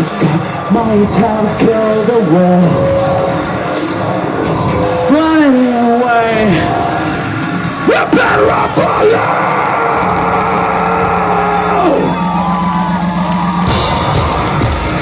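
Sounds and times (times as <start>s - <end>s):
industrial band playing live: 0.0s - 15.0s
pounding electronic beat: 0.0s - 15.0s
synth drone: 0.0s - 15.0s
singer yelling into microphone: 4.9s - 6.9s, 7.8s - 12.2s.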